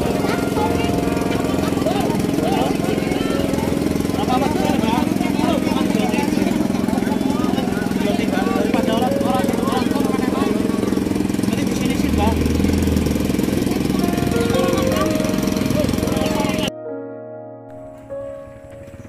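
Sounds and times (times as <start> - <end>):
music: 0.0 - 11.8, 13.6 - 19.0
people talking: 0.0 - 16.7
truck engine running: 0.0 - 16.7.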